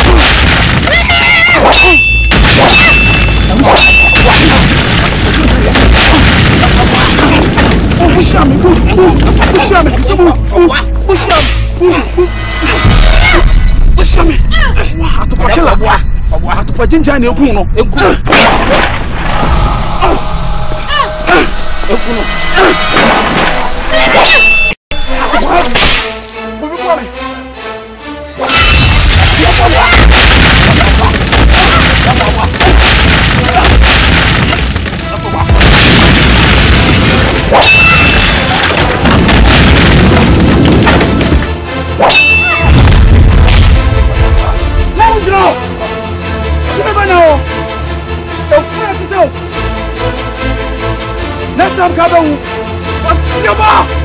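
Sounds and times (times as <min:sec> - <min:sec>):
men shouting and straining: 0:00.0 - 0:15.8, 0:19.9 - 0:23.2, 0:25.1 - 0:25.8, 0:28.5 - 0:35.7, 0:53.0 - 0:54.0
sustained music notes: 0:25.0 - 0:28.5.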